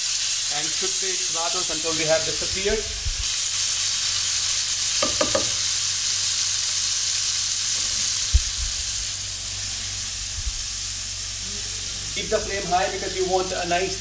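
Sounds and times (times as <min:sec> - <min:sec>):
food sizzling in a frying pan: 0:00.0 - 0:14.0
sharp knock: 0:05.0 - 0:05.5.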